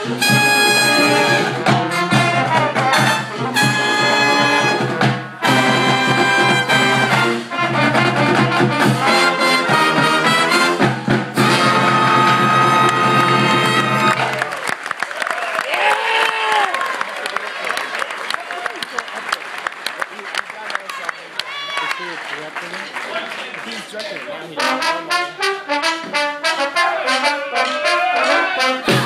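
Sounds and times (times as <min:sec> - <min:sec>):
brass band playing: 0:00.0 - 0:14.6, 0:24.5 - 0:29.0.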